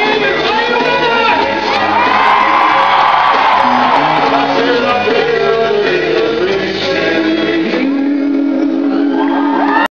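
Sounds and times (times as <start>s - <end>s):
crowd cheering and whooping: 1.3s - 5.2s, 8.9s - 9.9s.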